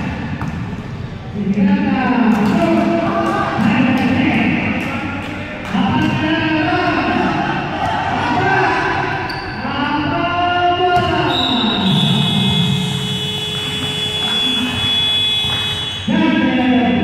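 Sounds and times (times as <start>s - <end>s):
voices calling out in hall: 1.2s - 17.0s
high-pitched buzzer tone: 11.8s - 16.1s.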